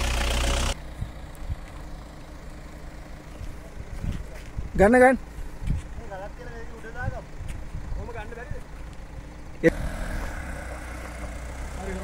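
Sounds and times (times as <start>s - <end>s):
car engine running low: 0.0s - 12.0s.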